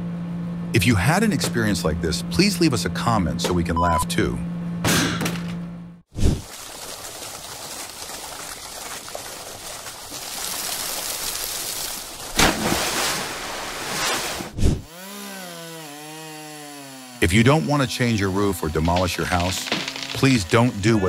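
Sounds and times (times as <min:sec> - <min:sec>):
water churning and splashing: 0:06.1 - 0:14.6
loud splash in water: 0:10.4 - 0:14.5
chainsaw engine running: 0:14.8 - 0:21.0.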